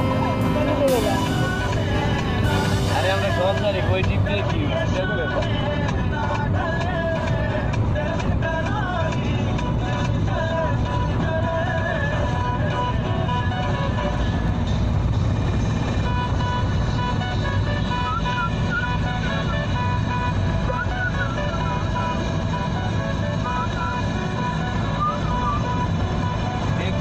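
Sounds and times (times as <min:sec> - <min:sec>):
music with wavering melody: 0:00.0 - 0:05.7, 0:09.8 - 0:27.0
vehicle engine and road rumble: 0:00.0 - 0:27.0.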